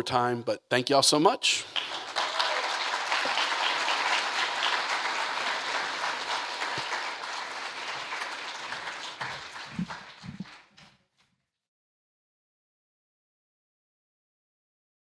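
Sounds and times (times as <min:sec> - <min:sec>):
audience applauding: 0:01.6 - 0:10.9.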